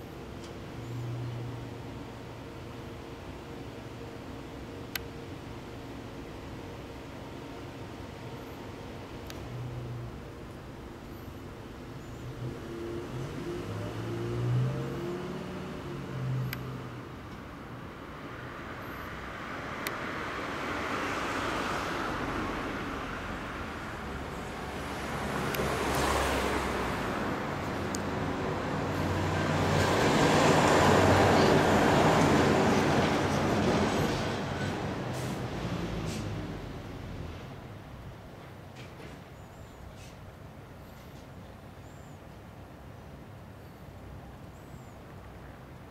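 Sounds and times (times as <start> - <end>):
passing road traffic: 0.0 - 45.9.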